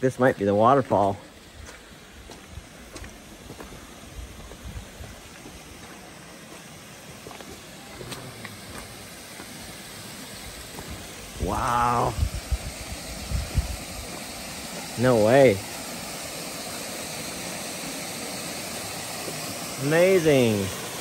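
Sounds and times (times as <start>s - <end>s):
waterfall and creek rushing: 0.0s - 21.0s
person exclaiming: 11.4s - 12.2s.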